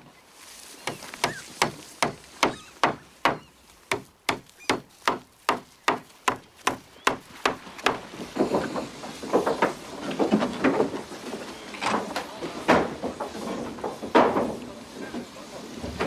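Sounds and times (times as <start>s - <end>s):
sharp knocks on wood: 0.9s - 8.5s.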